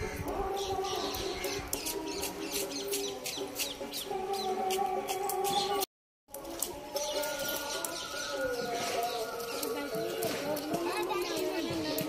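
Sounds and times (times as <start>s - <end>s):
small birds chirping: 0.0s - 4.8s, 6.9s - 12.0s.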